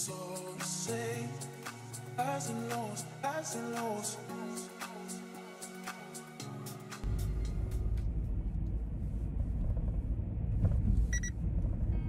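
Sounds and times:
road and engine rumble: 7.0s - 12.0s.

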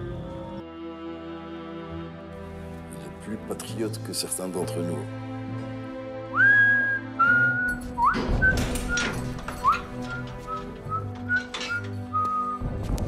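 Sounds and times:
slow whistled tune: 6.3s - 12.7s.

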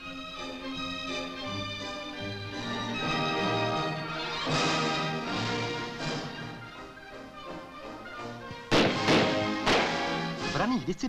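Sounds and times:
soft background music: 0.0s - 11.0s
loud rifle shot: 8.7s - 10.3s.

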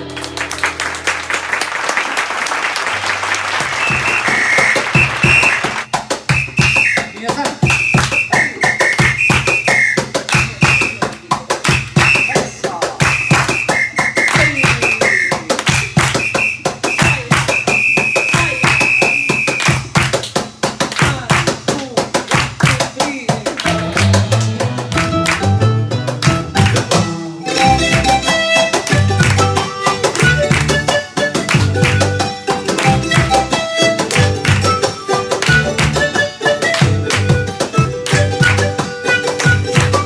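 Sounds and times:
folk band playing: 0.0s - 40.0s
high flute melody: 3.6s - 19.8s, 27.3s - 40.0s.

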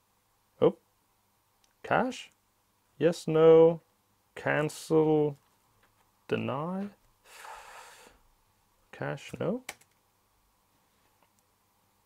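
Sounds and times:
person exhaling: 7.2s - 8.2s.

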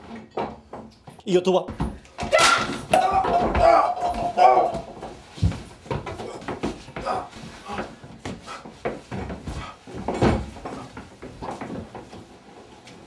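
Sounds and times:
knocks and thuds on wood: 1.7s - 12.2s.

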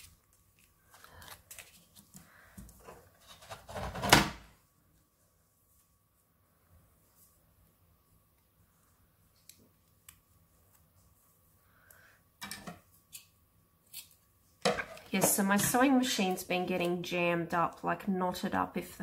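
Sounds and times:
paper crackling: 0.0s - 2.4s
paper rustling: 0.0s - 4.0s.

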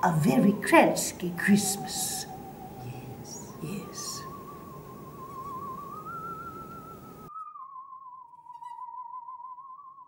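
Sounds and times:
background hiss: 0.0s - 7.3s.

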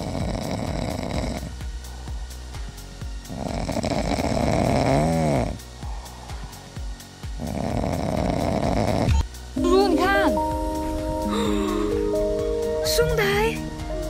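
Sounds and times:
cats snoring: 0.0s - 2.5s, 3.2s - 9.2s.

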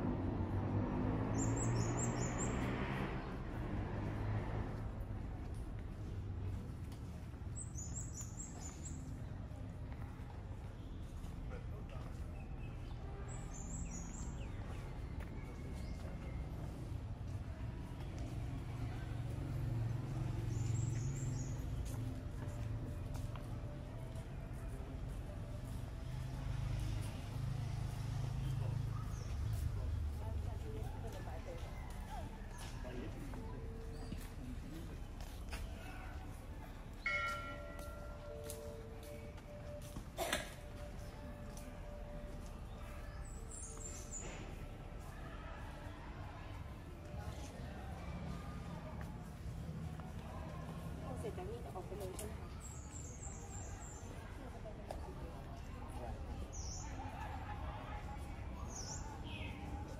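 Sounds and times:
small metal bell ringing: 37.1s - 38.4s.

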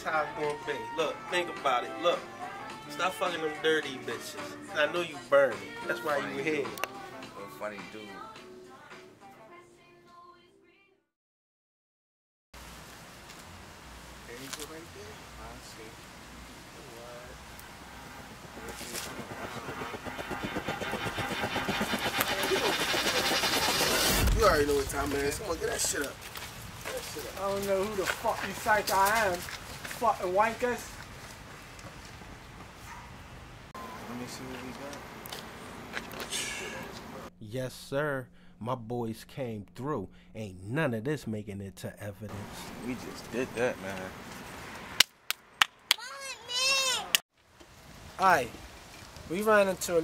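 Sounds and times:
faint outdoor background: 0.0s - 11.0s, 12.6s - 50.0s
bicycle freewheel ticking: 18.5s - 24.2s.

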